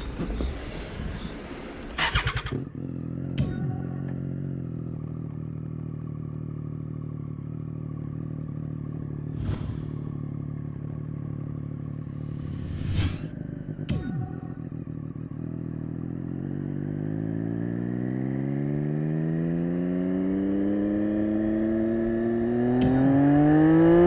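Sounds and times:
motorcycle engine idling: 2.0 - 12.5, 13.3 - 17.2.

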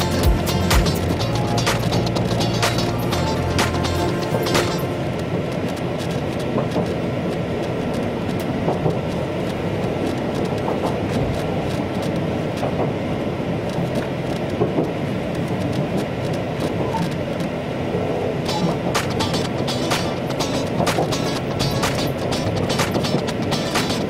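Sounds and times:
train interior rumble: 0.0 - 24.0.

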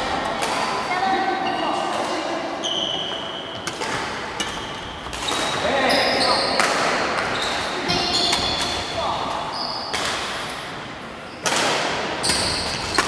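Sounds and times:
voices murmuring: 0.0 - 10.0
shoes squeaking on court floor: 0.0 - 10.6, 12.2 - 13.0
racket hitting shuttlecock: 3.6 - 5.6, 6.5 - 8.9, 11.4 - 13.0.

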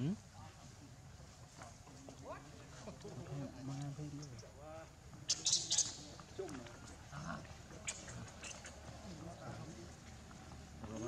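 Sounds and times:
macaque calling: 5.3 - 6.3, 7.2 - 9.1.

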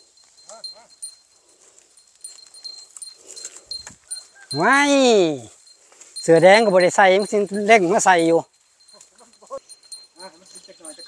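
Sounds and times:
steps rustling through stubble: 0.0 - 11.0.

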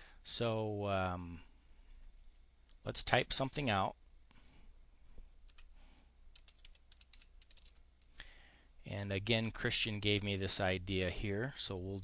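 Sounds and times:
computer keyboard typing: 6.3 - 8.1.

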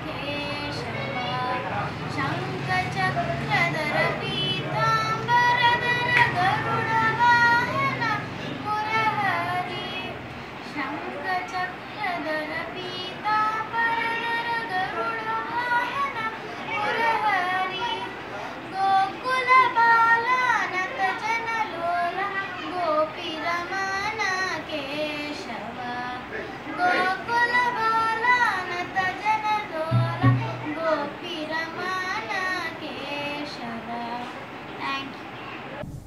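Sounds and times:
girl singing: 0.0 - 35.2.

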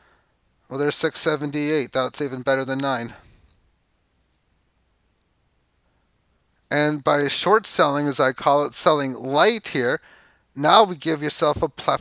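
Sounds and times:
man's voice: 0.7 - 3.3, 6.7 - 10.0, 10.6 - 12.0
computer mouse clicks: 4.2 - 4.5.

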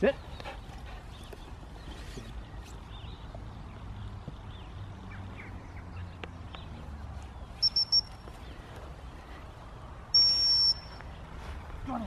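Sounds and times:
high-pitched whistle blasts: 7.6 - 8.1, 10.2 - 11.0.

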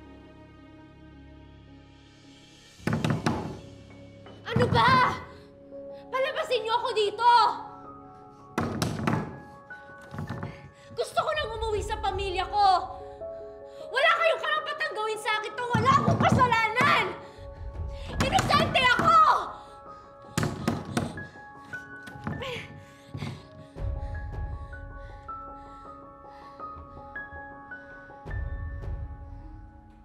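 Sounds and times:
background music: 0.0 - 30.0
hands thumping on door: 2.9 - 3.6, 8.6 - 9.4.

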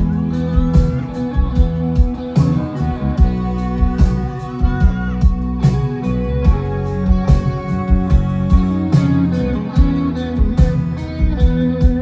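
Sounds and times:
bass guitar: 0.0 - 12.0
drum kit steady beat: 0.0 - 12.0
electric guitar: 0.0 - 12.0.

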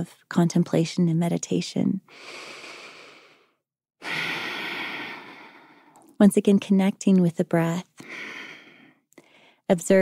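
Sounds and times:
slow breathing close to microphone: 2.1 - 6.0, 8.0 - 9.7.

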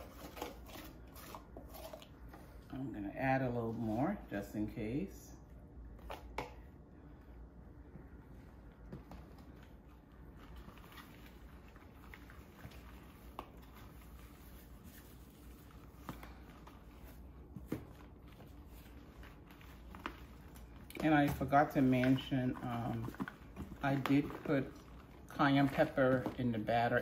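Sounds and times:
low room hum: 0.0 - 27.0
soft rustling: 7.9 - 26.4.

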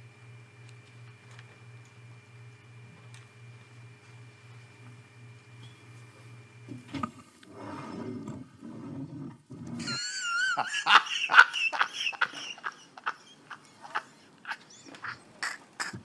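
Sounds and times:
man laughing loudly: 9.8 - 16.0.

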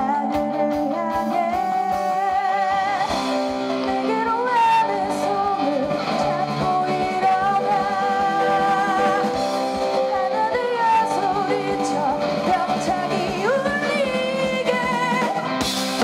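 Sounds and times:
pop-rock song with singing: 0.0 - 16.0.

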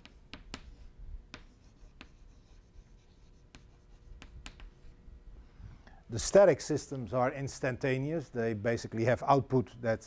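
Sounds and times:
chalk tapping on board: 0.0 - 4.8
chalk scratching on blackboard: 0.0 - 4.9.

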